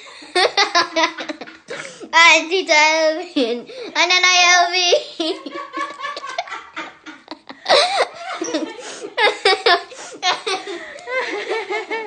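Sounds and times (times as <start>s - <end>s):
woman laughing heartily: 0.0s - 1.9s, 5.2s - 12.0s.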